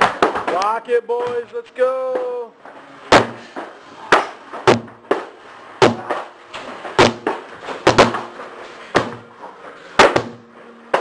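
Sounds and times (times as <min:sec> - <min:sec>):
heavy workout thuds: 0:03.1 - 0:09.4, 0:10.0 - 0:11.0.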